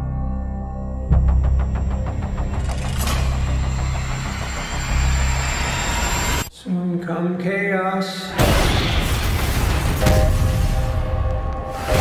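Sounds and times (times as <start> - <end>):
dense noisy tension swell: 1.5 - 6.5.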